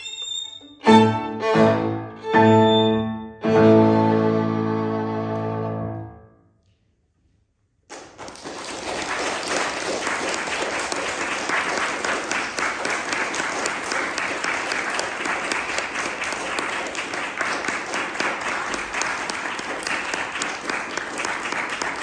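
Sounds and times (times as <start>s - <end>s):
audience applauding: 7.9s - 22.0s.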